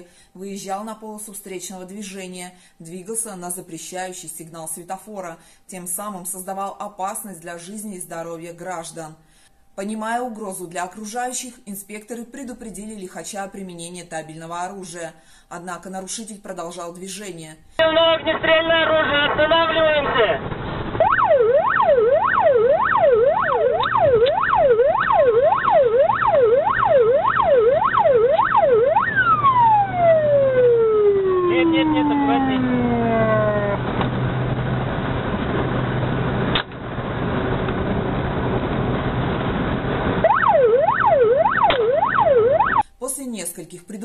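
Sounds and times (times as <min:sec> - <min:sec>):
police siren wailing: 0:21.0 - 0:34.0, 0:40.2 - 0:42.8
low engine drone: 0:28.6 - 0:40.3.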